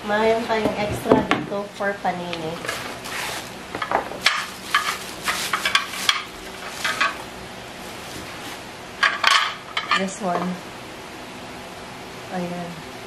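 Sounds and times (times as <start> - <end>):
plastic bag crinkling: 1.6 - 9.6.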